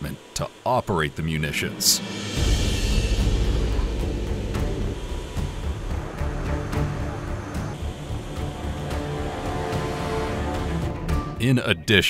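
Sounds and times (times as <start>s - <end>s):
turboprop engines droning in flight: 0.0s - 11.4s.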